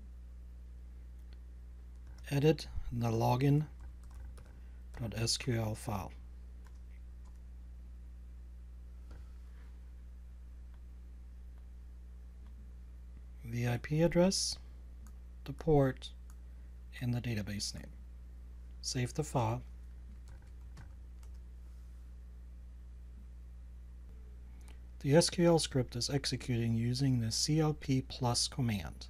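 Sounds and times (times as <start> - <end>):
low electrical hum: 0.0 - 29.0
computer keyboard keystrokes: 3.8 - 4.6, 20.1 - 21.4
faint keyboard keystrokes: 3.8 - 4.6.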